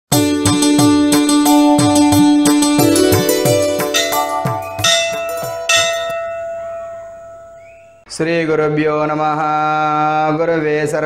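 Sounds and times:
bell-like struck notes: 1.5 - 8.0.

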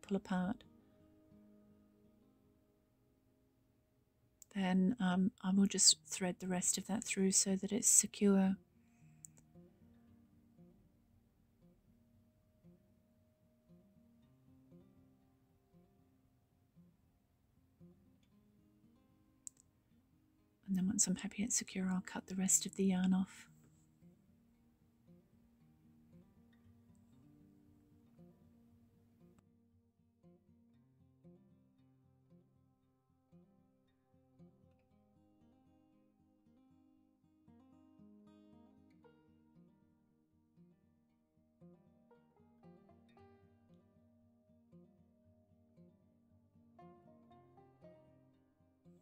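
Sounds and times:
faint plucked guitar music: 0.0 - 49.0.

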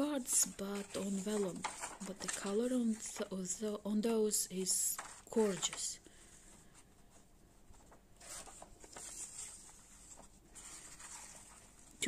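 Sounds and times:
paper rustling and sliding: 0.0 - 3.3, 4.9 - 12.0.

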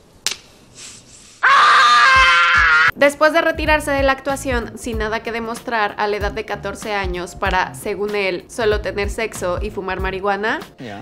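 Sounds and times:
boy screaming: 1.4 - 3.0.

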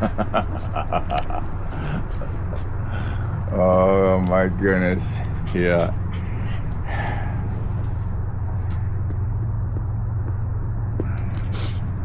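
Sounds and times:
faint light jingling: 0.0 - 12.0
steady low hum: 0.0 - 12.0.

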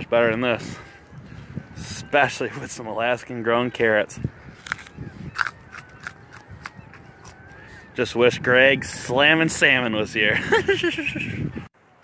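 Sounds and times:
carrot crunching being chewed: 4.6 - 7.4.

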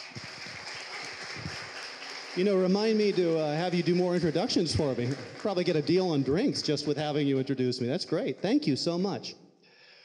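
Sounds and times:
audience clapping: 0.0 - 9.1.

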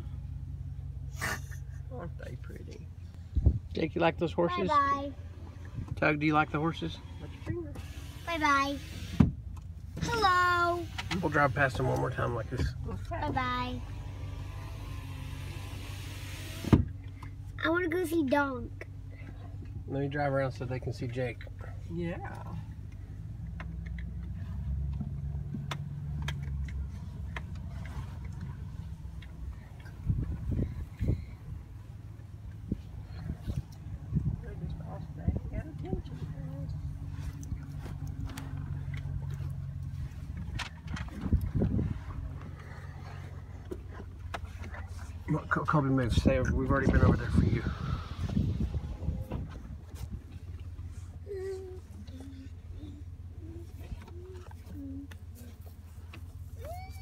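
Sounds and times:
car engine and tyre rumble: 0.0 - 57.0
air rushing through window: 46.6 - 49.4.

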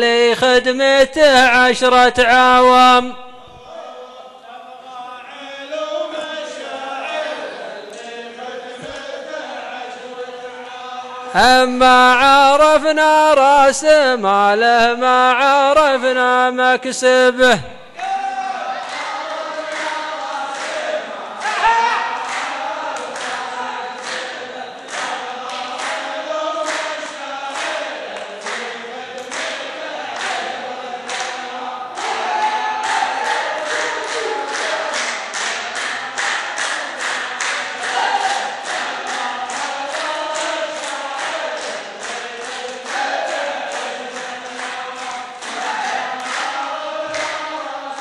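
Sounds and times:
men singing in unison: 0.0 - 18.0, 18.7 - 48.0
hand claps: 8.8 - 9.1, 18.8 - 21.5, 22.1 - 48.0.

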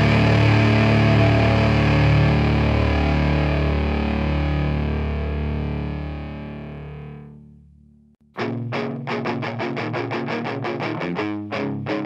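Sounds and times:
distorted electric guitar chord ringing: 0.0 - 7.5, 8.4 - 12.0.

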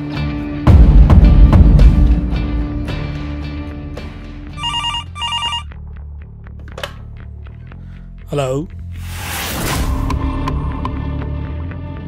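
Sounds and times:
background music: 0.0 - 12.0
desk telephone ringing: 4.6 - 5.7.

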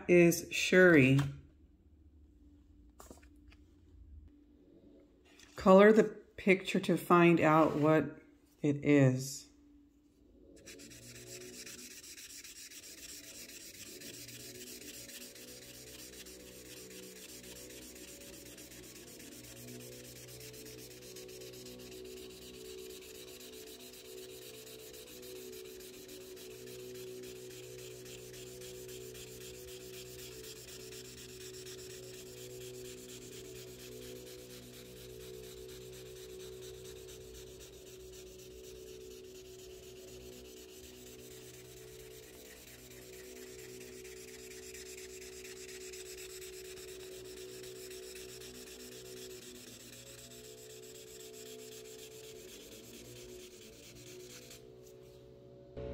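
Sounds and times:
steady low hum: 7.8 - 48.4
felt tip marker scribbling on paper: 10.6 - 54.6.

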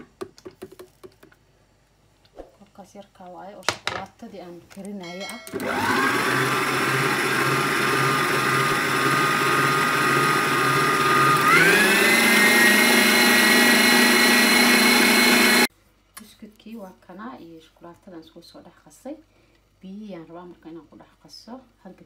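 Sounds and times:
stand mixer motor whining: 5.5 - 15.7.

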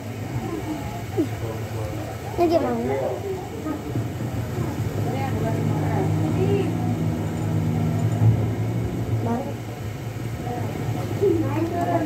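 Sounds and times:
indistinct voices: 0.0 - 12.0
low mechanical hum: 0.0 - 12.0.

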